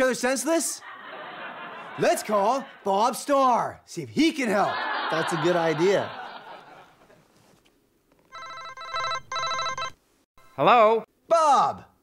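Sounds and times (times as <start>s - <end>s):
telephone ringing: 8.2s - 10.6s.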